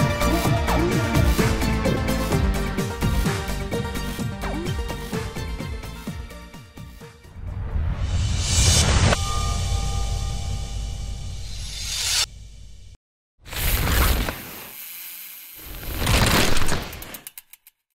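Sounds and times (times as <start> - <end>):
whoosh: 7.3 - 13.0
quickening clicks: 16.6 - 17.9.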